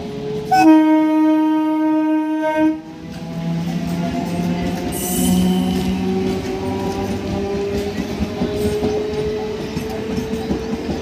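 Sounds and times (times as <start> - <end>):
passing train rumble: 0.0 - 11.0
train horn blast: 0.4 - 2.9.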